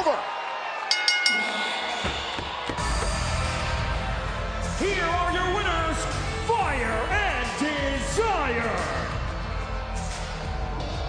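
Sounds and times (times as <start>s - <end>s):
ring bell struck rapidly: 0.9s - 2.6s
entrance music with drum hits: 1.2s - 11.0s.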